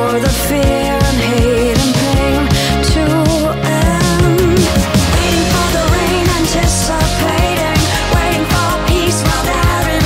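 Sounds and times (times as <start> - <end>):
pop remix with drum beat: 0.0 - 10.0.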